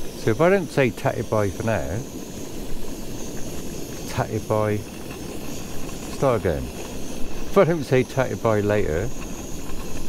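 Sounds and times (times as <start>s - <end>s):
camping stove hissing: 0.0s - 10.0s.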